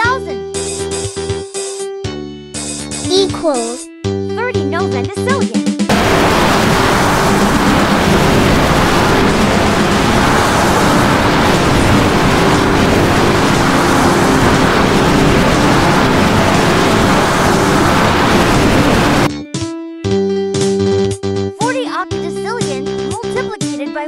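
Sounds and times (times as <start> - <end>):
loud rushing noise: 5.9 - 19.3.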